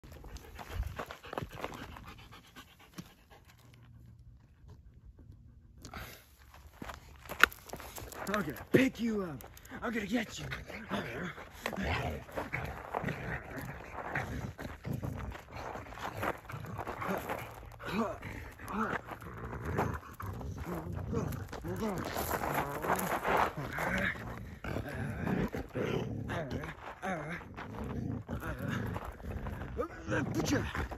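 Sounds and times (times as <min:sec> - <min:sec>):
dog panting: 0:00.0 - 0:07.1, 0:07.7 - 0:25.8.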